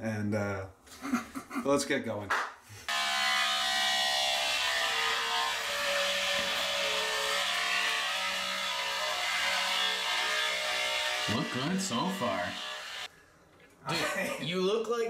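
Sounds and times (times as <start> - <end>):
electric beard trimmer buzzing: 2.9 - 13.1.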